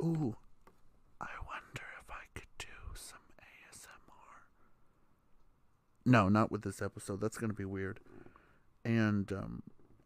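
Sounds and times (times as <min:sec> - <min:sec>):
person whispering: 0:01.2 - 0:04.6.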